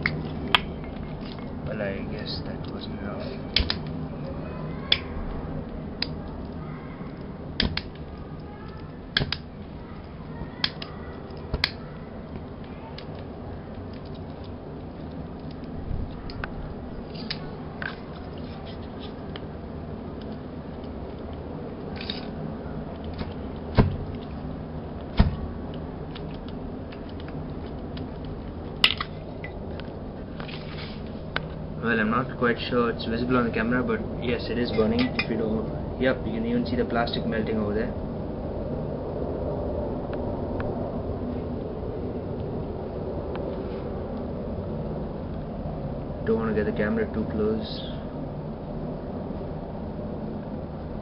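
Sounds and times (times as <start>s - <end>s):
sharp clicks and crackles: 0.0s - 31.6s
room noise: 0.0s - 47.1s.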